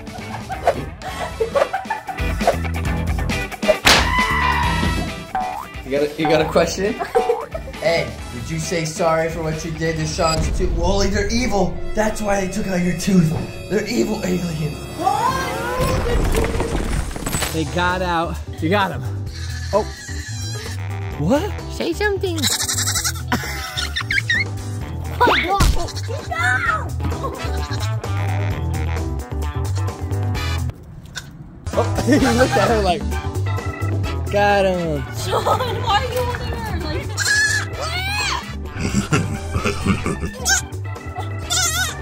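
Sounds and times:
background music with bass line: 0.0s - 13.6s, 17.9s - 30.7s, 31.7s - 42.0s
baby goat bleating: 19.3s - 20.9s, 22.4s - 23.3s, 25.8s - 26.5s, 27.4s - 27.9s, 37.2s - 38.5s, 40.3s - 42.0s.

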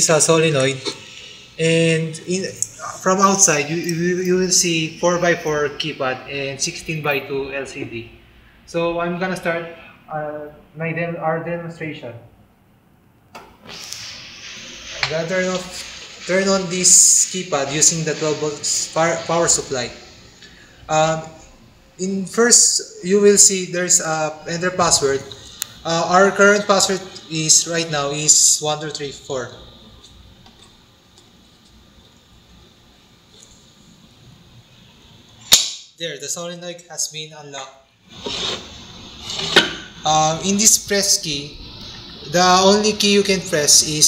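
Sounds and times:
steady electronic hiss: 0.0s - 44.0s.

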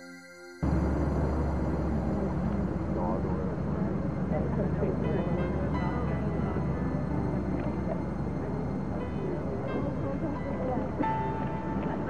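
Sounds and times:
distant people talking: 0.6s - 12.0s
steady low rumble: 0.6s - 12.0s.

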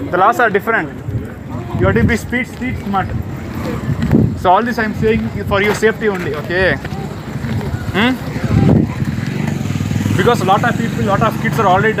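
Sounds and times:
motor vehicle rumbling: 0.0s - 12.0s.

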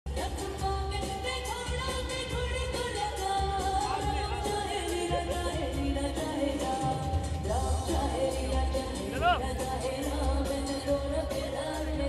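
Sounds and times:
instrumental accompaniment with beat: 0.1s - 12.0s
woman singing with vibrato: 0.1s - 12.0s.

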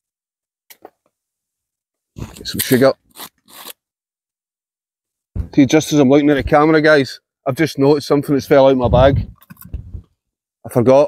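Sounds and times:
brief rasping scrapes: 2.2s - 3.8s.

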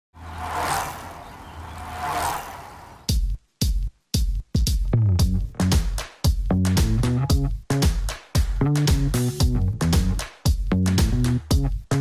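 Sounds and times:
whooshes: 0.2s - 3.1s.

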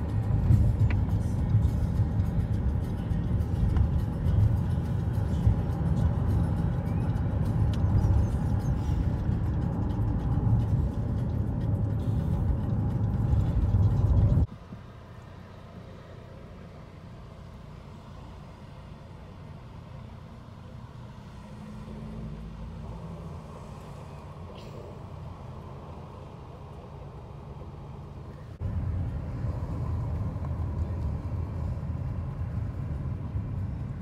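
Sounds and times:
street traffic hum: 0.0s - 34.0s
vehicle road noise rumble: 0.0s - 34.0s.

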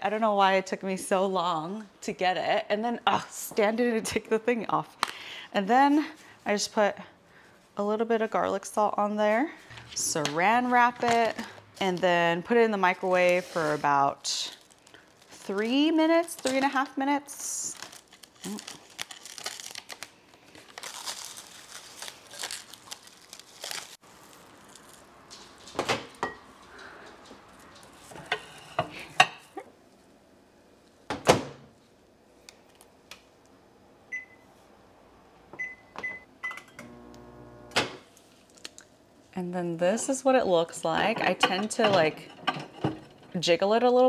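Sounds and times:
plastic wrap crinkling: 10.0s - 25.8s
microwave humming: 35.6s - 38.0s.

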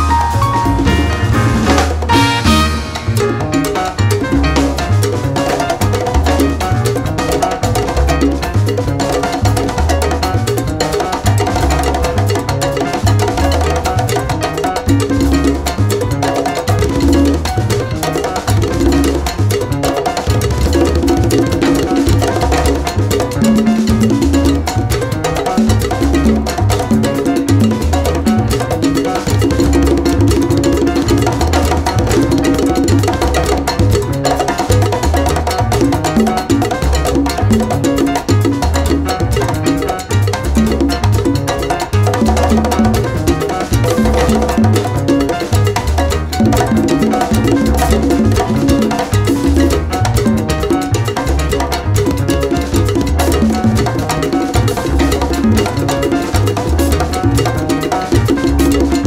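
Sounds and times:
latin jazz band playing: 0.0s - 59.0s.

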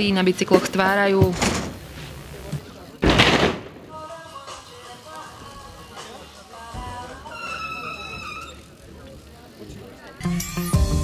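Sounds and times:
bikes rolling on concrete: 0.0s - 3.0s, 3.9s - 11.0s.

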